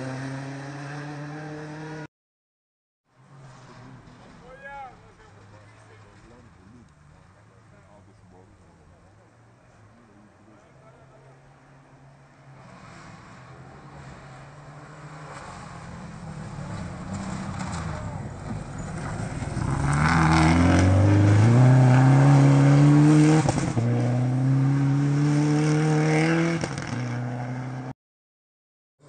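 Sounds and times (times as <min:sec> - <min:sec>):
rally car engine revving: 0:00.0 - 0:02.1, 0:12.5 - 0:27.9.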